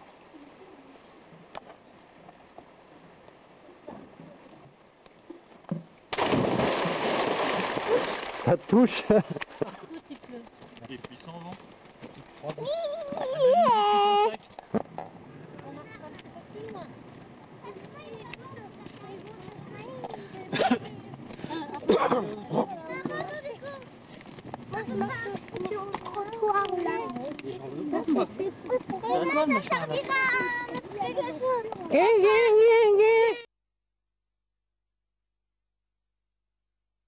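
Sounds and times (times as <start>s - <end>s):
splash into pool: 6.1s - 8.8s
water churning and spraying: 6.1s - 9.0s
children calling out and chattering: 12.4s - 14.4s, 15.3s - 33.5s.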